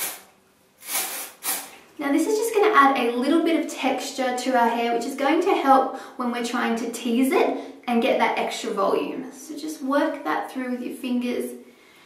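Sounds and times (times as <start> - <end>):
aerosol can spraying: 0.0 - 1.8.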